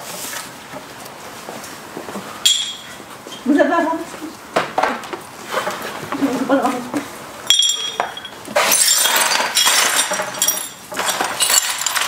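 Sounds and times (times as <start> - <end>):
broken glass clinking and scraping: 7.5 - 12.0.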